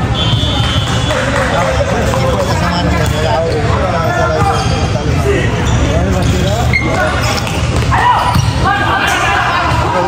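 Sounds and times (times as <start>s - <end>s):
din of volleyball game: 0.0s - 10.0s
voices calling and shouting: 0.0s - 10.0s.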